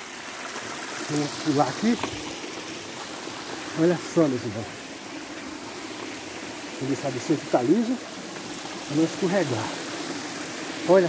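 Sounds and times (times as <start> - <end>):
stream flowing over rocks: 0.0 - 11.0.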